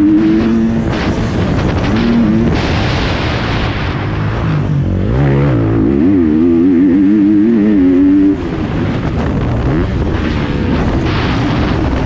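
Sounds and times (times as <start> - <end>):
motorcycle engine revving: 0.0 - 12.0
wind noise: 0.0 - 12.0.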